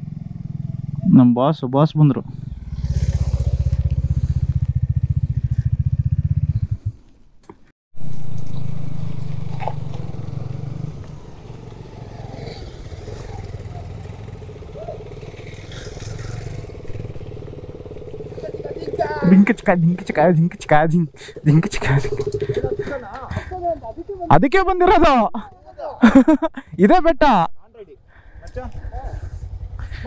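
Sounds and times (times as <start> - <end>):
motorcycle engine running: 0.0 - 1.2, 2.0 - 7.1, 8.0 - 24.3, 28.0 - 30.0
motorcycles riding slowly: 0.0 - 24.4, 27.6 - 30.0.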